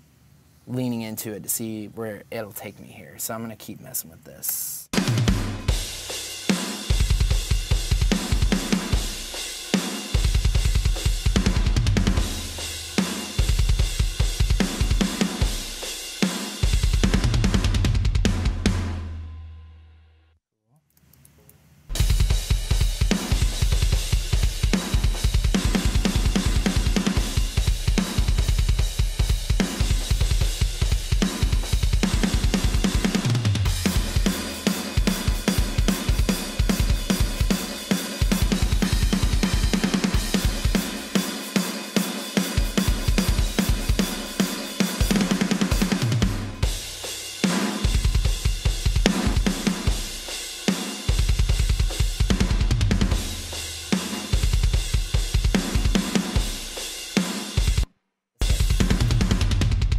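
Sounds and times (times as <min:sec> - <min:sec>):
metal drums playing: 0:04.9 - 0:19.3, 0:21.9 - 0:59.9.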